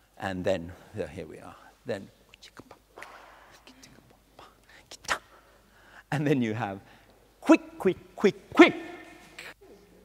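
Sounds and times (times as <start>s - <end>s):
person whispering: 1.5s - 5.5s
breathing: 5.4s - 6.1s, 6.8s - 7.2s.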